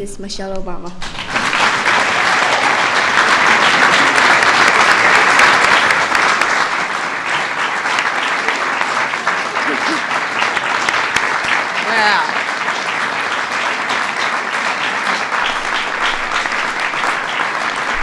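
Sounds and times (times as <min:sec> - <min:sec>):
crowd applauding: 0:01.0 - 0:18.0.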